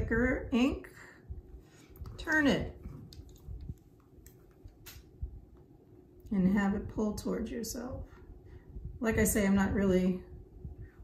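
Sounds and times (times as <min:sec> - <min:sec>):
fan hum: 0:00.0 - 0:11.0.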